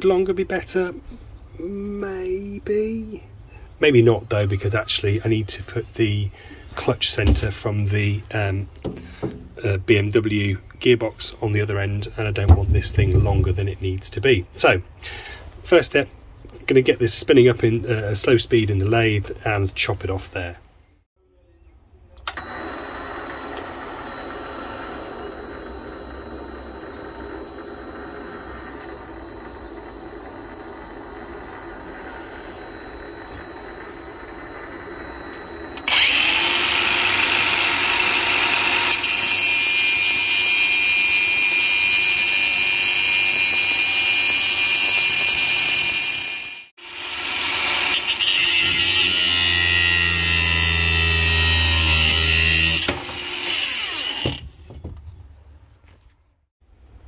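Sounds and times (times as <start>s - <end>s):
metal lathe high whine: 22.3s - 54.3s
angle grinder cutting steel: 22.3s - 54.4s
low binding drone: 22.4s - 37.0s.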